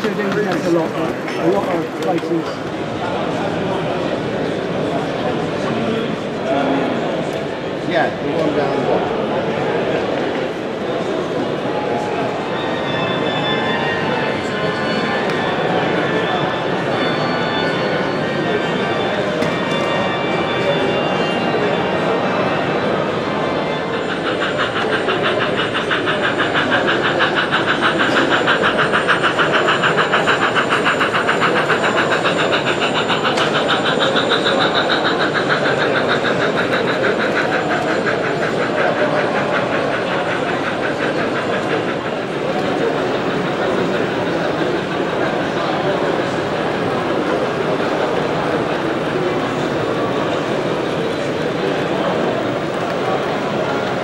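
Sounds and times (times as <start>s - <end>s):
hall chatter: 0.0s - 54.0s.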